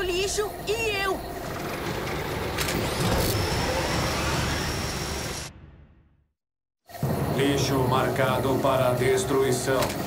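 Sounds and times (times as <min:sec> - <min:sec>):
mechanical grinding rumble: 0:01.1 - 0:06.0.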